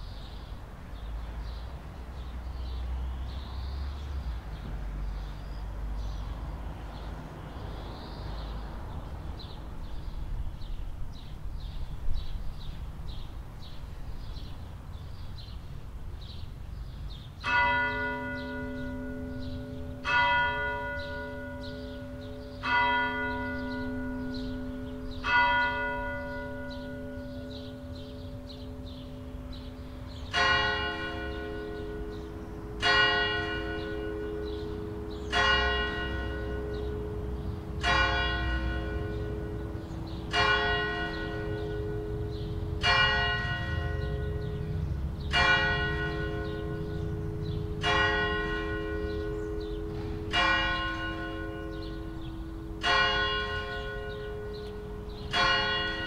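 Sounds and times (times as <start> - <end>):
church bells ringing: 17.4 - 56.0.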